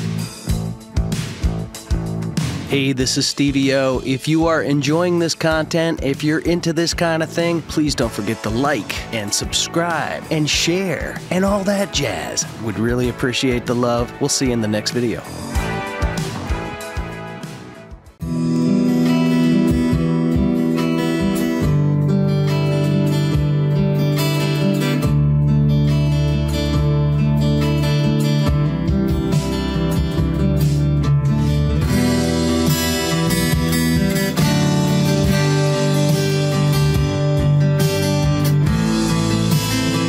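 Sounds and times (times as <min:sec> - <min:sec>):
acoustic guitar picking chords: 0:00.0 - 0:40.0.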